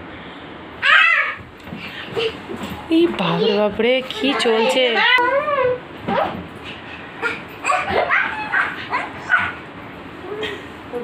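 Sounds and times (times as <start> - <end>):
child squealing and yelping: 0.8 - 1.4, 4.3 - 6.3, 7.2 - 9.6.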